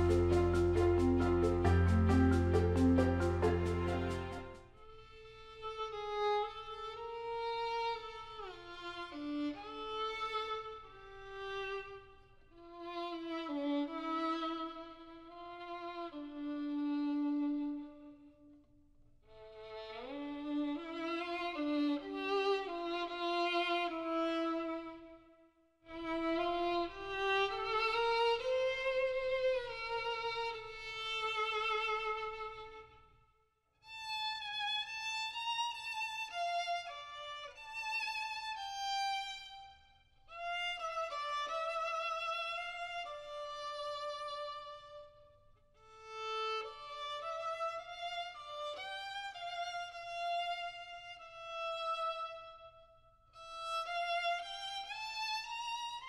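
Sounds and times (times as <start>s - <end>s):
solo violin melody: 0.0s - 18.6s, 19.3s - 33.2s, 33.8s - 56.0s.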